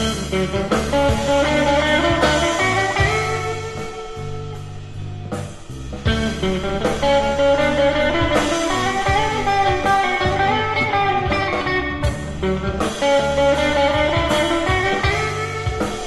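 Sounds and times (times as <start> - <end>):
bending electric guitar lines: 0.0 - 16.0
blues-rock band playing: 0.0 - 16.0.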